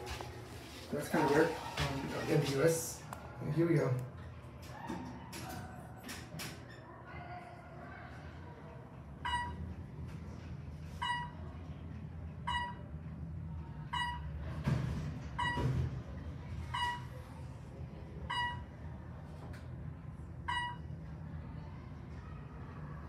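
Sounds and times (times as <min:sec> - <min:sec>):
short electronic beep: 0:11.0 - 0:11.4, 0:12.5 - 0:12.8, 0:13.9 - 0:14.2, 0:15.4 - 0:15.7, 0:18.3 - 0:18.6, 0:20.5 - 0:20.9.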